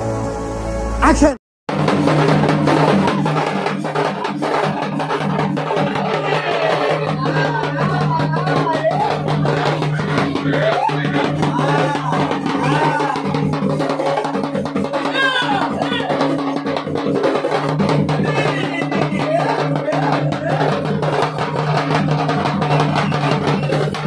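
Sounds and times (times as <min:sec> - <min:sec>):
barrel drums beaten fast: 0:01.7 - 0:24.0.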